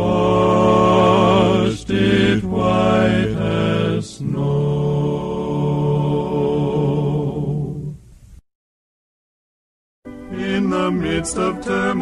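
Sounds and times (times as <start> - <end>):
male quartet singing in harmony: 0.0 - 8.0, 10.2 - 12.0.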